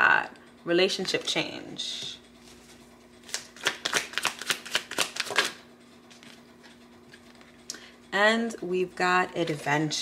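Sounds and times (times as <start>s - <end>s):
cards being shuffled: 2.4s - 7.6s.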